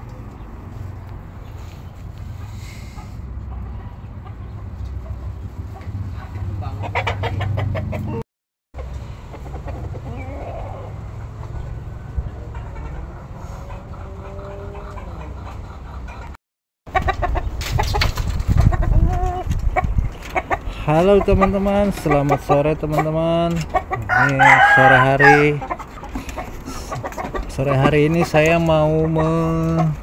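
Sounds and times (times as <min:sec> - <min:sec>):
chickens clucking: 0:01.4 - 0:08.2, 0:08.8 - 0:30.0
rooster crowing: 0:24.0 - 0:25.6.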